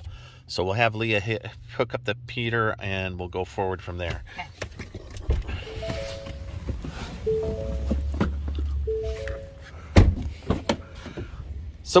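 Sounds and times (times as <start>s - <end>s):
three-note warning chime: 5.6s - 8.2s, 8.8s - 9.9s
truck door thunk: 10.0s - 10.8s.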